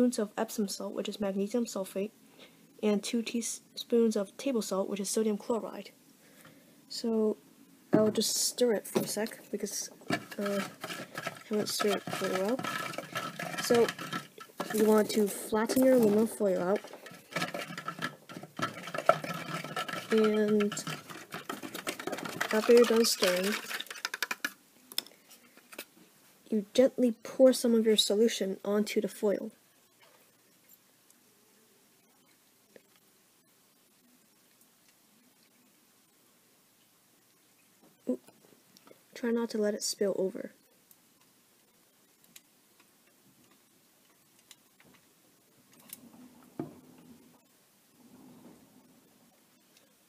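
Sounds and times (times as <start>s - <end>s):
stirrer clicking against cup: 10.1s - 24.6s.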